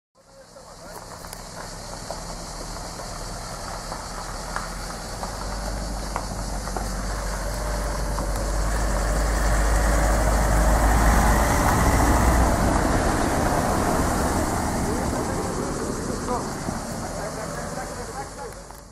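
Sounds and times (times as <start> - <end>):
vehicle engines rumbling: 0.2 - 18.9.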